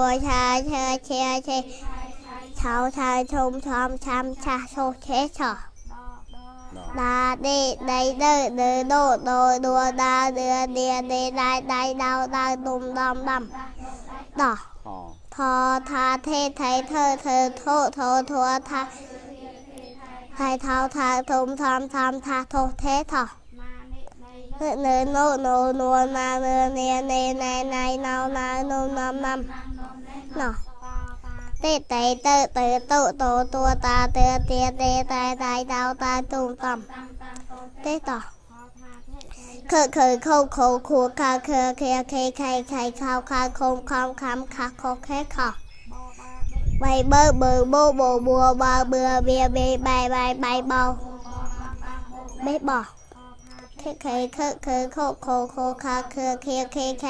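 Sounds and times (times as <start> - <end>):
children chanting syllables: 0.0 - 57.0.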